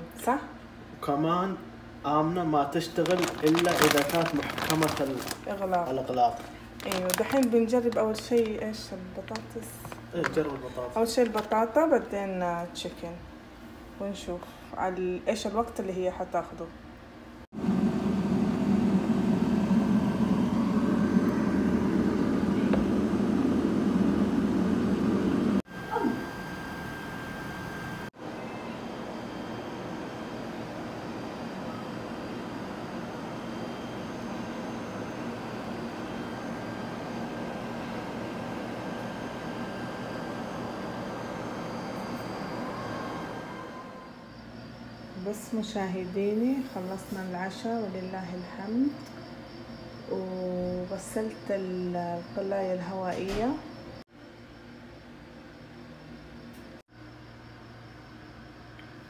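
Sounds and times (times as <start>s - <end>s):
air fryer fan whirring: 0.0s - 16.4s, 17.1s - 59.0s
low hum: 17.6s - 28.1s.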